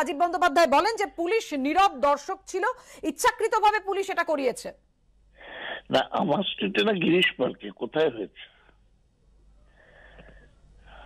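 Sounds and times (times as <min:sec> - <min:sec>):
breathy intake of breath: 0:05.4 - 0:05.9, 0:09.7 - 0:11.0.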